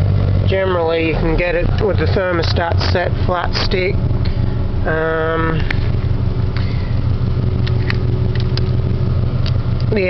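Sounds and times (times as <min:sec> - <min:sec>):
car engine idling: 0:00.0 - 0:10.0
faint steady hum: 0:00.0 - 0:10.0.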